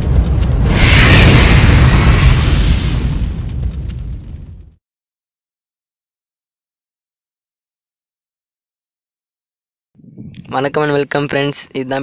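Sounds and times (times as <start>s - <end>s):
deep explosion rumble: 0.0s - 4.8s.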